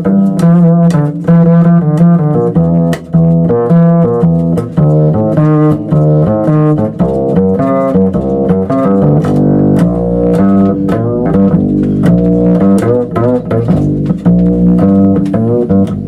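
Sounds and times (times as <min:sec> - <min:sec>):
double bass plucked notes: 0:00.0 - 0:16.0.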